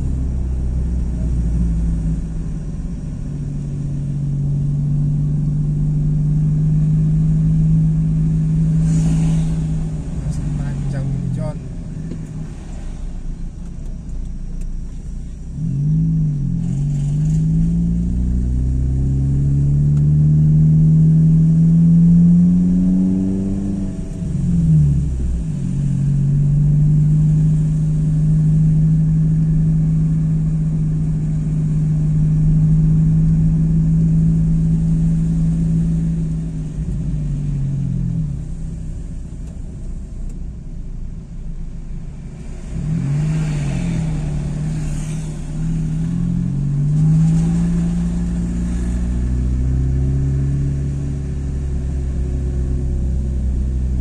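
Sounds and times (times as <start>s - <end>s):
car engine revving: 0.0s - 54.0s
road rumble: 0.0s - 54.0s.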